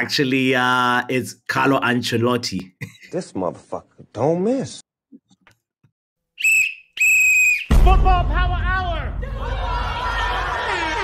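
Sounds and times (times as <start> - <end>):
shrill whistle blast: 6.4 - 8.0.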